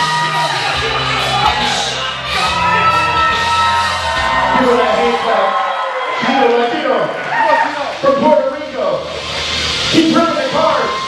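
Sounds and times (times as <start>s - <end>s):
loud shouting voices: 0.0s - 8.2s
music playing: 0.0s - 11.0s.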